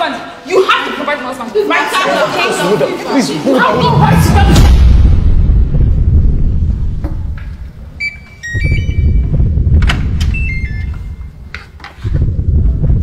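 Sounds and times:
steady low rumble: 0:03.7 - 0:13.0
electronic beeps: 0:08.0 - 0:09.6, 0:10.2 - 0:11.5.

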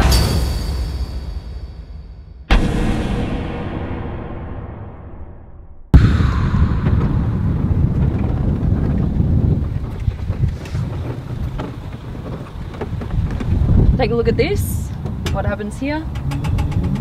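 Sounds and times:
wind buffeting microphone: 0:06.0 - 0:17.0.

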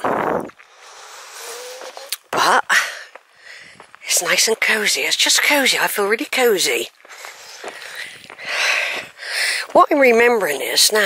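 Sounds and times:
wind rush on microphone: 0:00.0 - 0:00.6
faint outdoor hiss: 0:00.0 - 0:11.0.

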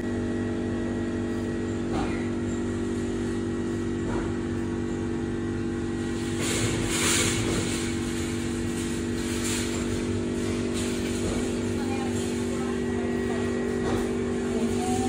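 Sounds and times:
steady machine hum: 0:00.0 - 0:15.0.

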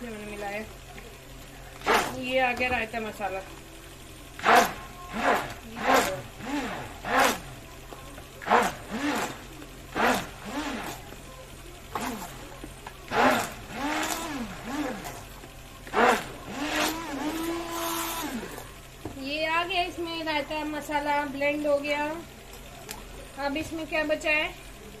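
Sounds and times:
electric hand blender whirring: 0:01.8 - 0:02.4, 0:04.4 - 0:07.6, 0:08.4 - 0:11.2, 0:13.1 - 0:18.7.

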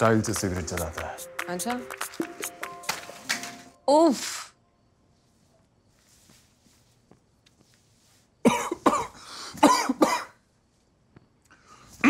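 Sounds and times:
man hacking coughs: 0:08.4 - 0:10.4.

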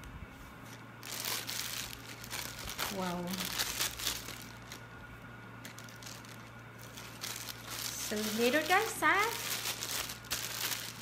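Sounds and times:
plastic bag crinkling: 0:00.6 - 0:11.0.

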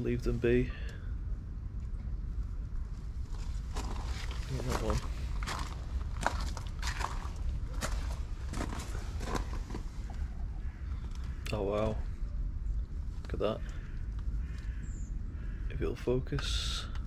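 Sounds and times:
steady low rumble: 0:00.0 - 0:17.0
footsteps on gravel: 0:03.3 - 0:10.0.

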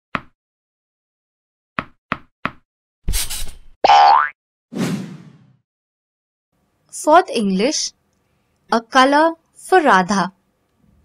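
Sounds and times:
cartoon boing: 0:03.9 - 0:04.4
cartoon swish: 0:04.7 - 0:05.6.

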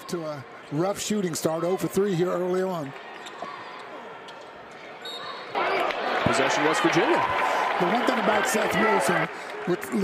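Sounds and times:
court noise: 0:00.0 - 0:10.0.

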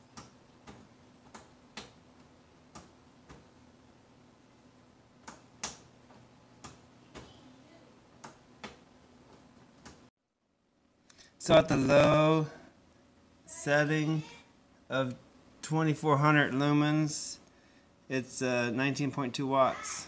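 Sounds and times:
low steady hum: 0:00.0 - 0:19.8.

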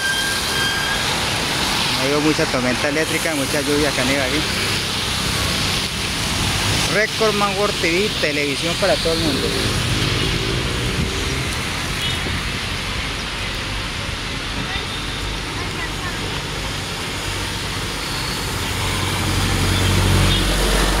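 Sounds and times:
rain hissing: 0:00.0 - 0:21.0
tyres on wet pavement: 0:00.0 - 0:21.0
vehicle engine: 0:15.2 - 0:21.0.

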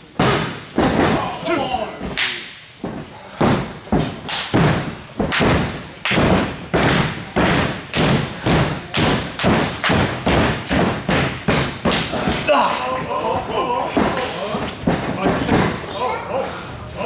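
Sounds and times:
loud thuds in a wrestling ring: 0:00.2 - 0:01.4, 0:02.8 - 0:12.5, 0:13.9 - 0:15.8.

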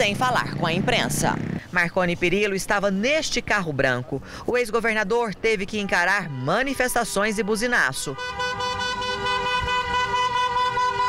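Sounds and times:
low traffic rumble: 0:00.0 - 0:11.0
car horns blaring: 0:06.3 - 0:11.0.

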